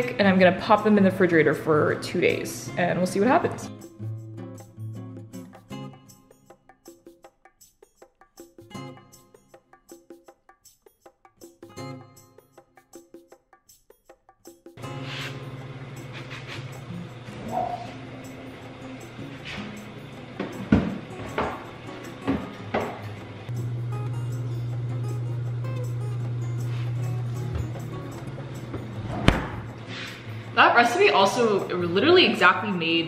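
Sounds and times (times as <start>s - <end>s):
refrigerator low hum: 14.8s - 31.2s
heavy thud: 29.0s - 29.8s.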